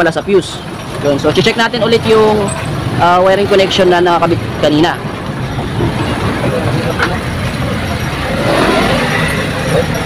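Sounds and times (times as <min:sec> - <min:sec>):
motor vehicle rumble: 0:00.0 - 0:10.0.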